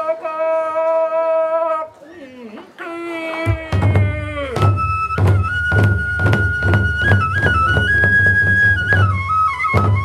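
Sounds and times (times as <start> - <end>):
taiko drums beating: 3.4 - 10.0
bamboo flute high note: 3.7 - 10.0.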